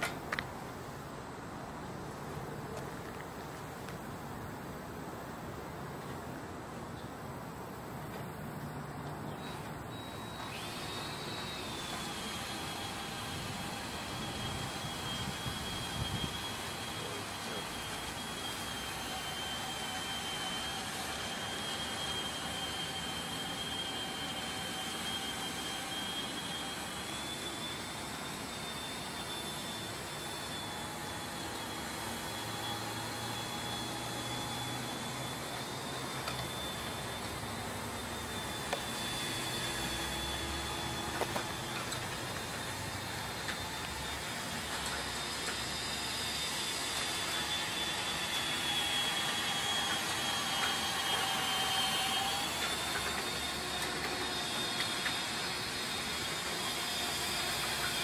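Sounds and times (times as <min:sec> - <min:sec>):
cordless drill motor whine: 0:07.5 - 0:58.0.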